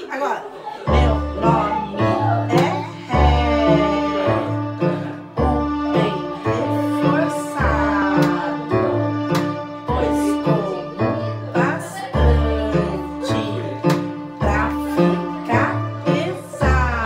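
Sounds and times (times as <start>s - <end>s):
digital piano children's tune: 0.9s - 17.0s.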